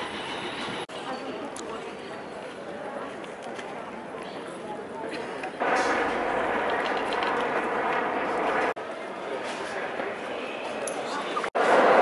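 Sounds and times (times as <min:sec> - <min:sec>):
crowd chatter: 0:00.9 - 0:12.0.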